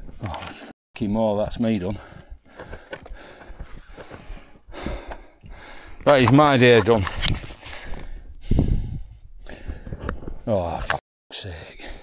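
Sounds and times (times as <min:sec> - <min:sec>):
person breathing hard: 0:01.9 - 0:06.1, 0:07.6 - 0:10.1.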